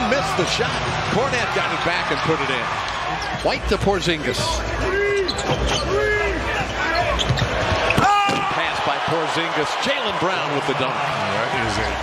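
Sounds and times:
arena crowd noise: 0.0 - 12.0.

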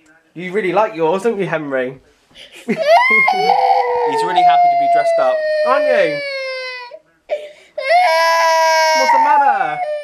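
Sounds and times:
toddler crying: 2.8 - 7.0, 7.8 - 10.0.

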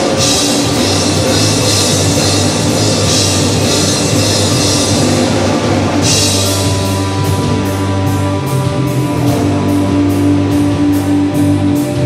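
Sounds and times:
live rock band: 0.0 - 12.0.

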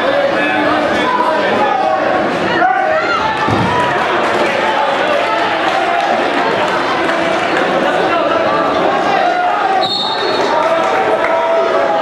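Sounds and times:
spectators talking and shouting: 0.0 - 12.0.

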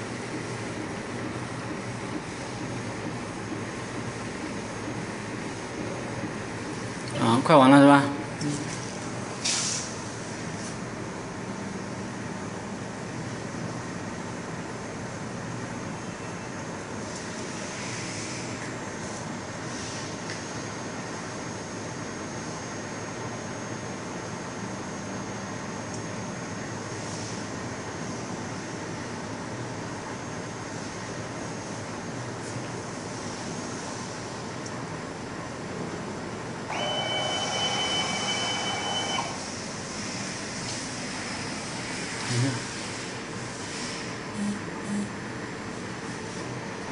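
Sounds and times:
printer machine running: 0.0 - 34.6, 35.2 - 45.0
faint brief hisses: 9.4 - 9.9
motor whine with high tone: 15.7 - 32.3, 36.4 - 42.8, 43.9 - 45.4.

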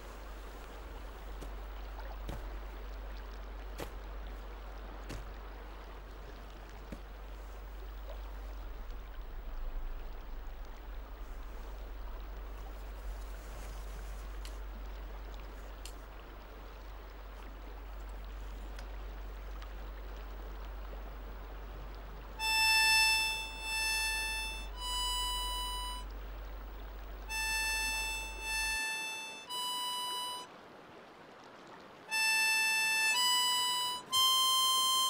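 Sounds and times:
harmonica slow melody: 0.0 - 2.5, 3.6 - 4.4, 22.2 - 30.5, 32.1 - 35.0
faint steady hiss: 0.0 - 35.0.

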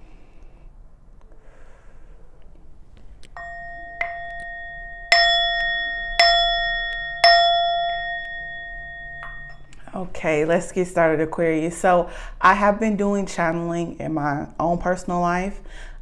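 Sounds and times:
metal chime ringing: 3.4 - 10.0.

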